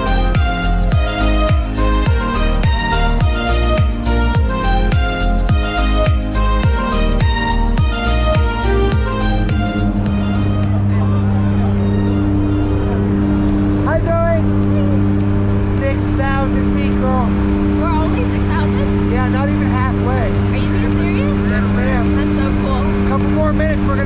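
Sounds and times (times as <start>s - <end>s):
propeller plane engine drone: 0.0s - 24.0s.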